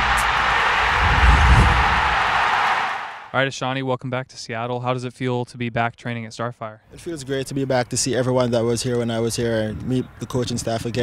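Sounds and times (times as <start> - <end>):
loud rushing noise: 0.0 - 3.3
deep bass: 0.9 - 2.2.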